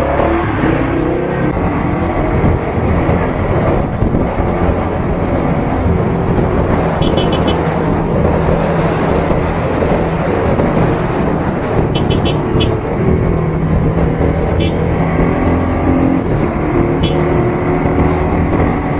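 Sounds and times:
wind and road noise: 0:00.0 - 0:18.9
motorcycle engine running: 0:01.9 - 0:08.0, 0:11.3 - 0:18.9.

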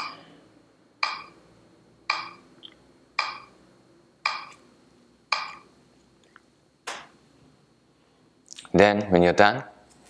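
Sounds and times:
metronome ticking: 0:01.0 - 0:01.4, 0:02.1 - 0:02.4, 0:03.2 - 0:03.5, 0:04.2 - 0:04.6, 0:05.3 - 0:05.6.

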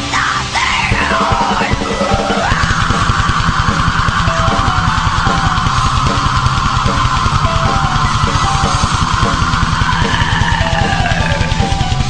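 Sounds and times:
distorted guitar: 0:00.0 - 0:12.0
fast drumming: 0:00.0 - 0:12.0.

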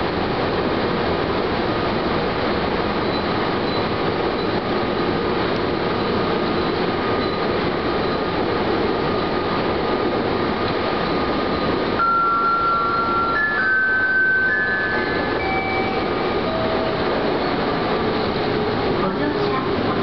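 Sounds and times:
train wheels rumbling on rails: 0:00.0 - 0:20.0.

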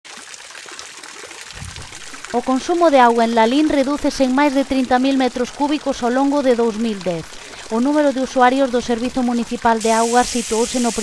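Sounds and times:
fountain water trickling: 0:00.1 - 0:11.0.

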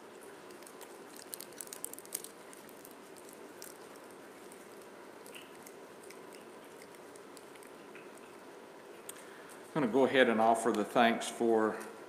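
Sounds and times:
small clicks and crinkles: 0:00.0 - 0:09.7
room noise: 0:00.0 - 0:12.0.

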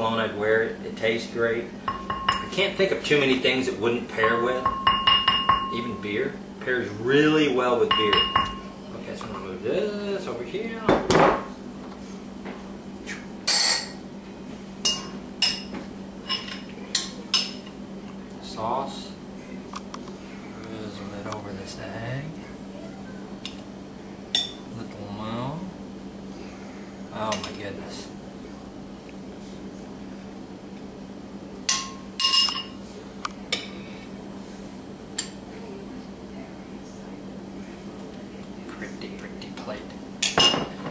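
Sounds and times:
steady low hum: 0:00.0 - 0:40.9
utensils and cookware clinking: 0:14.8 - 0:17.8, 0:31.7 - 0:32.8, 0:40.2 - 0:40.9.

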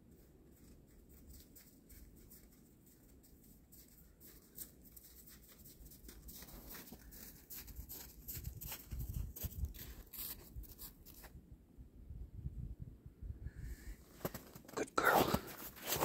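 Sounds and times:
footsteps on snow and leaves: 0:03.7 - 0:11.3, 0:14.1 - 0:16.0.

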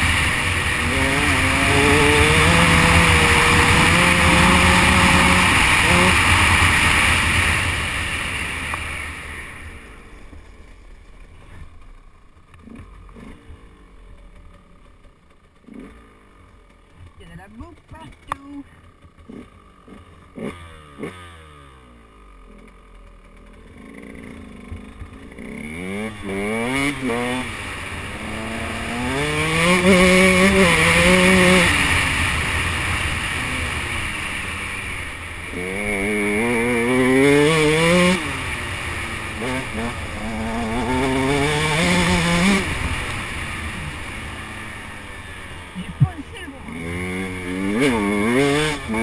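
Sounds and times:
dirt bike engine revving: 0:00.0 - 0:10.1, 0:12.6 - 0:49.0.

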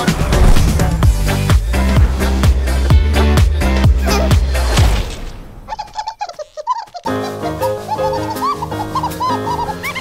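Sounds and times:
music: 0:00.0 - 0:05.4, 0:07.0 - 0:10.0.

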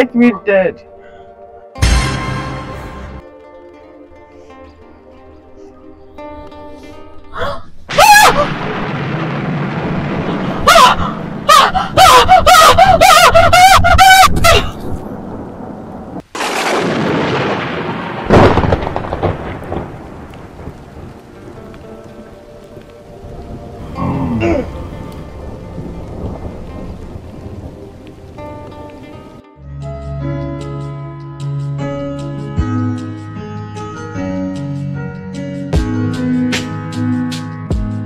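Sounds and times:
woman screaming: 0:07.4 - 0:08.7, 0:10.6 - 0:14.8
thunder cracks and rumble: 0:07.9 - 0:29.4.

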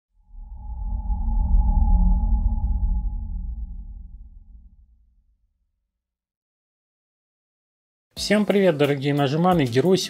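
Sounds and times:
sonar-like tone: 0:00.2 - 0:05.4
deep bass rumble: 0:00.2 - 0:05.5.

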